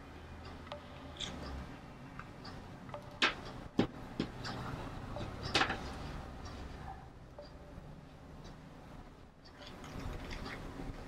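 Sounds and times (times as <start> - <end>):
pins ticking: 0.4 - 6.6.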